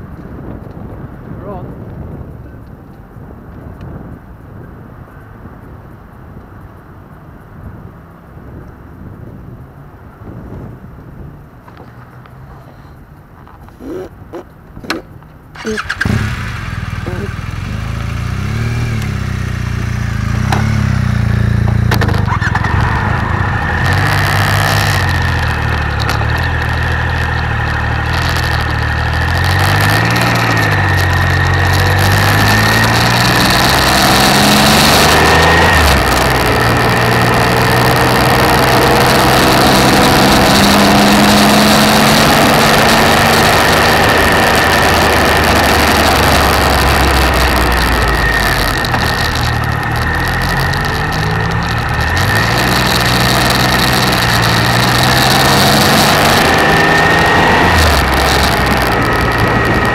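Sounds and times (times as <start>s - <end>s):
wind rush on microphone: 0.0s - 12.1s, 17.5s - 59.9s
motorcycle engine pulling uphill: 11.6s - 59.9s.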